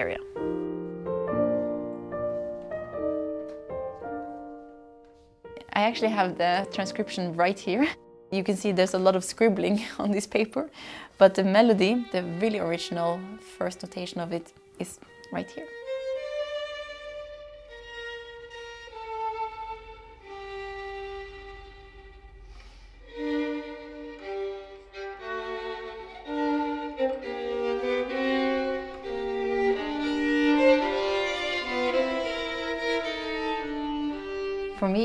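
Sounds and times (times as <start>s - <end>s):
solo violin melody: 0.0s - 8.1s, 11.1s - 35.0s.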